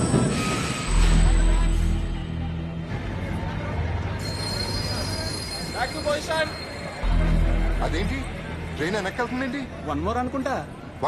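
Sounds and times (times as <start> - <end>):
train wheels squealing on rails: 0.0 - 2.1, 4.2 - 7.1.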